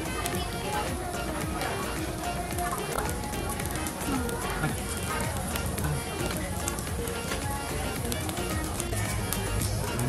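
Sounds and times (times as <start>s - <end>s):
background music: 0.0s - 10.0s
many voices chattering: 0.0s - 10.0s.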